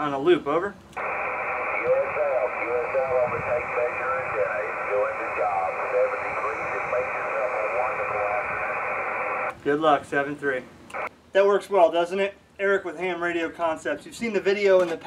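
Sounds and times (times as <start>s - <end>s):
radio voice through speaker: 1.0s - 9.5s
radio band noise hiss: 1.0s - 9.6s, 10.9s - 11.1s.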